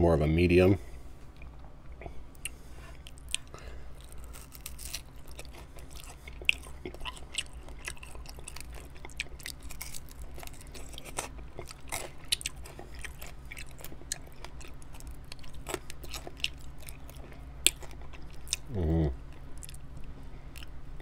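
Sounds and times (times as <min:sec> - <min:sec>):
chewing chicken wing: 0:01.4 - 0:21.0.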